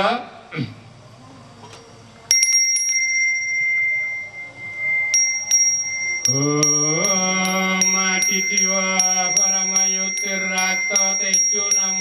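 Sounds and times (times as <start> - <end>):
hand bell ringing: 2.3 - 12.0.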